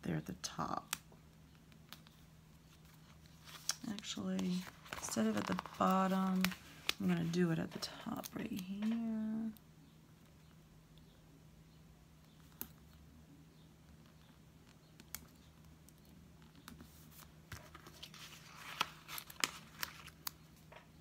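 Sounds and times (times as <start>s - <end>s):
low steady hum: 0.0s - 21.0s
paper stickers crinkling and clicking: 2.8s - 9.2s, 15.0s - 20.6s.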